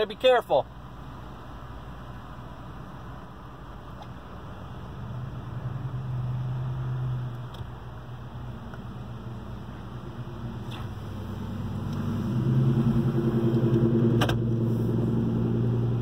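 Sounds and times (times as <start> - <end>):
car engine rumble: 0.0 - 16.0.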